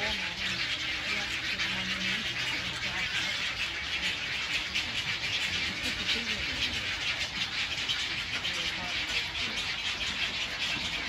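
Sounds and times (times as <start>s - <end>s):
egret colony calling: 0.0s - 11.0s.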